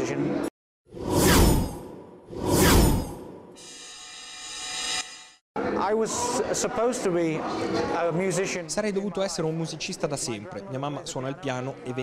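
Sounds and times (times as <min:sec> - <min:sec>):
whoosh sound effects: 0:01.0 - 0:03.4.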